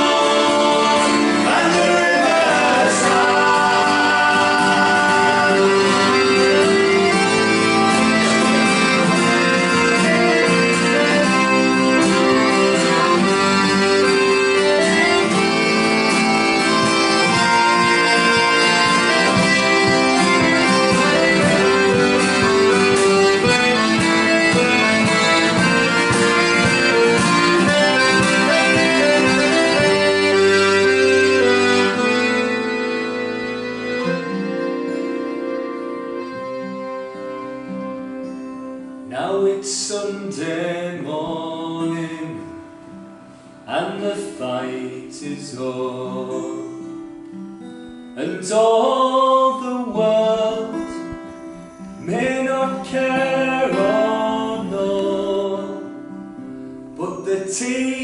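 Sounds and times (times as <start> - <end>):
accordion playing chords and melody: 0.0 - 58.0
acoustic guitar: 0.0 - 58.0.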